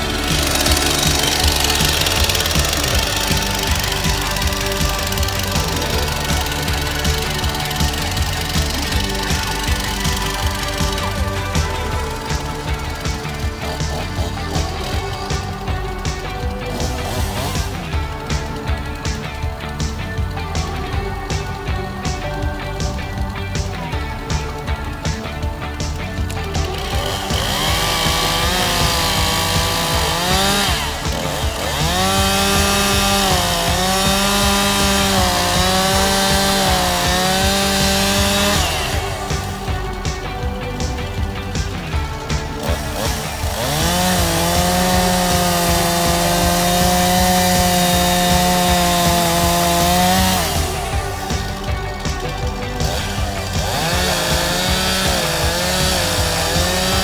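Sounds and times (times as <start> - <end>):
background music with beat: 0.0 - 57.0
chainsaw cutting wood: 0.0 - 57.0.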